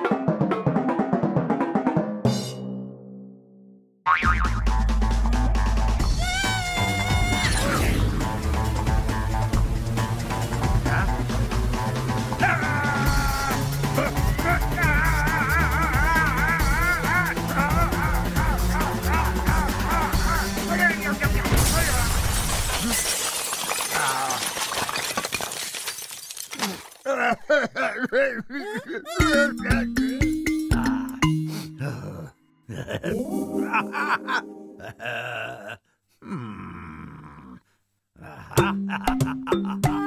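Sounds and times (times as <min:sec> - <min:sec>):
wobbling boing sound effect: 0:04.1 - 0:04.6
cartoon background music: 0:04.1 - 0:22.0, 0:29.1 - 0:35.0, 0:38.6 - 0:40.0
cartoon crash and shatter: 0:21.4 - 0:27.0.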